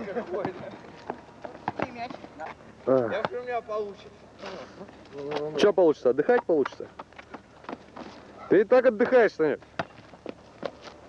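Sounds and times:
basketball bouncing on asphalt: 0:00.3 - 0:02.4, 0:06.3 - 0:08.2, 0:09.0 - 0:11.0.

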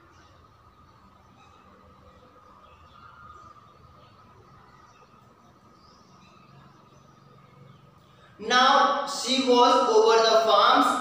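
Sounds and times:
faint high chirps: 0:00.0 - 0:08.4.

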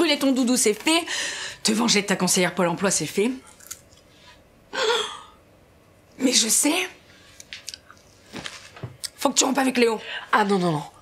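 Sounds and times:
potato crisps crunching: 0:03.5 - 0:04.0.

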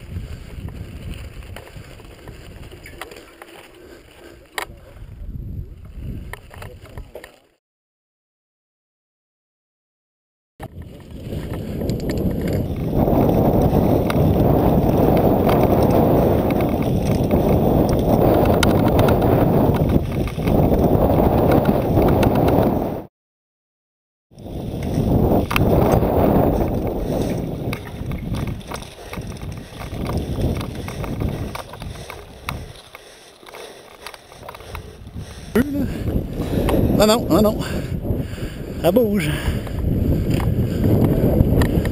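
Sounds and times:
wind rumbling on microphone: 0:00.0 - 0:07.3, 0:10.6 - 0:23.1, 0:24.3 - 0:41.9
bike clicks and rattles: 0:00.1 - 0:05.0, 0:05.8 - 0:07.6, 0:10.6 - 0:22.8, 0:24.4 - 0:37.0, 0:39.4 - 0:41.9.

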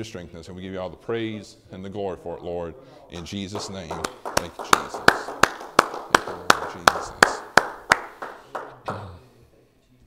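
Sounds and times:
person clapping hands: 0:03.2 - 0:09.2.

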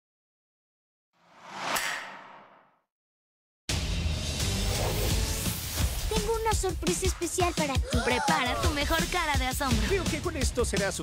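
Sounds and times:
whoosh with sharp hit: 0:01.4 - 0:02.7.

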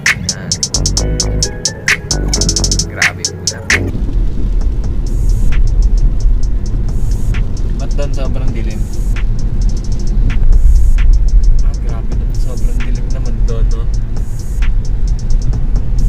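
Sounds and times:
background music with steady beat: 0:00.0 - 0:16.0
car road and engine rumble: 0:00.0 - 0:16.0.

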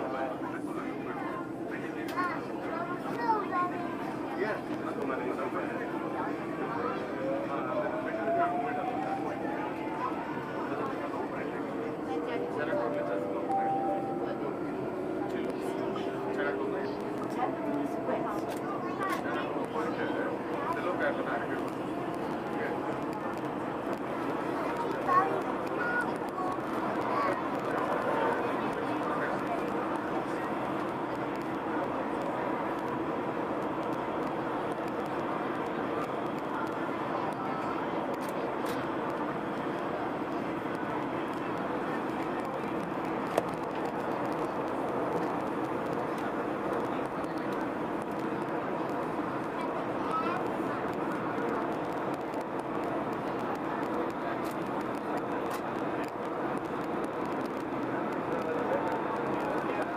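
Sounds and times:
train wheels on rails in tunnel: 0:00.0 - 0:59.9.

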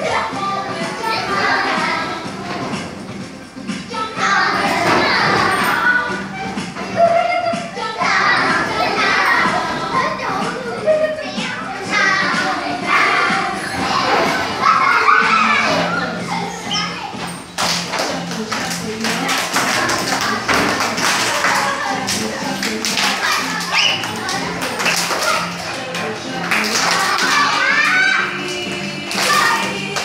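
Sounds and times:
children chattering: 0:00.0 - 0:02.9, 0:03.8 - 0:17.5, 0:18.2 - 0:30.0
children's dance song: 0:00.0 - 0:30.0
claps and thumps: 0:17.2 - 0:30.0.

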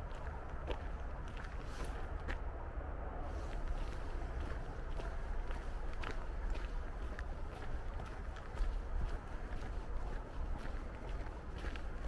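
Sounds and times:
wind rumbling on microphone: 0:00.0 - 0:12.0
footsteps on gravel: 0:00.1 - 0:02.4, 0:03.5 - 0:12.0.

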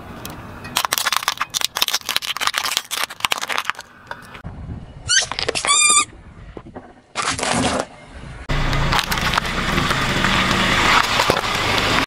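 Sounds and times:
dry pasta cracking under tyre: 0:00.8 - 0:04.4, 0:08.7 - 0:12.0
high wavering squeak: 0:05.0 - 0:06.2.

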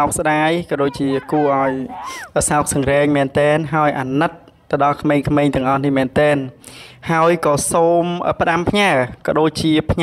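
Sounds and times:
man speaking: 0:00.0 - 0:05.3.

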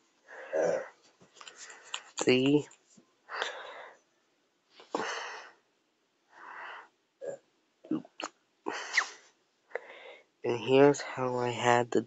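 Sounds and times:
breathing and sniffing: 0:00.3 - 0:02.2, 0:03.3 - 0:04.0, 0:04.8 - 0:05.6, 0:06.3 - 0:07.0, 0:08.7 - 0:10.3.

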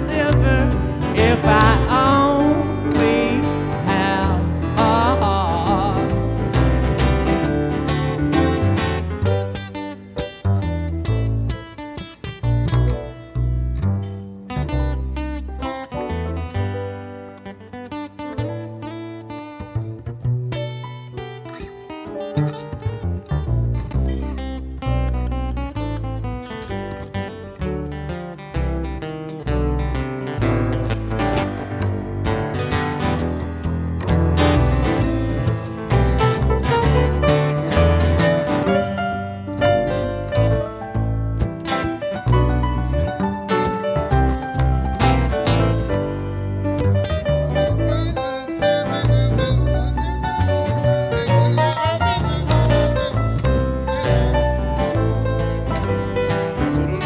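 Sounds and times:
acoustic guitar strumming: 0:00.0 - 0:57.0
upright bass plucking: 0:00.0 - 0:57.0.

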